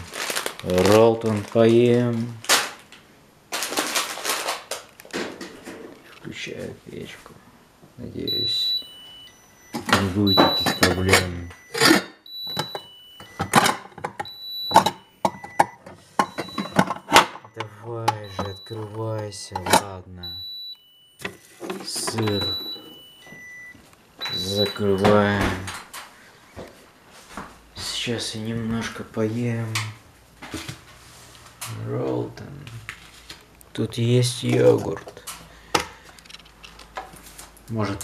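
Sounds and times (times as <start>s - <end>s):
phone handling knocks and clicks: 9.7s - 19.9s.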